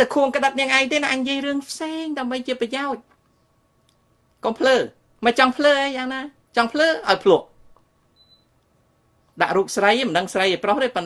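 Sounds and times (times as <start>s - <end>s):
man speaking: 0.0s - 3.0s, 4.4s - 7.6s, 9.4s - 11.0s
faint high beep: 8.2s - 8.5s.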